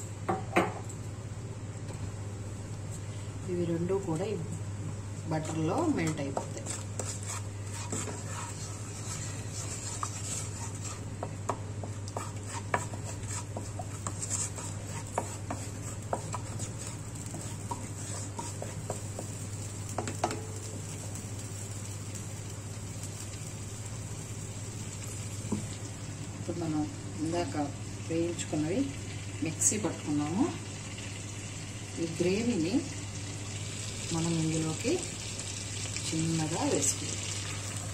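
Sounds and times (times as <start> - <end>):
butter sizzling: 5.3 - 26.6, 27.4 - 37.9
spatula scraping nonstick pan: 5.4 - 20.4
spatula tapping pan: 5.4 - 20.5.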